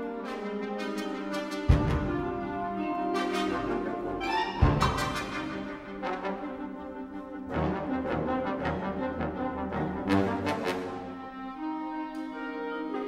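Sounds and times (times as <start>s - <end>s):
wind ensemble with brass playing: 0.0s - 13.0s.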